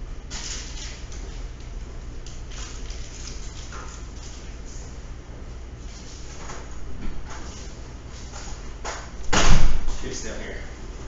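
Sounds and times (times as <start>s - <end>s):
loud thud: 9.3s - 10.0s.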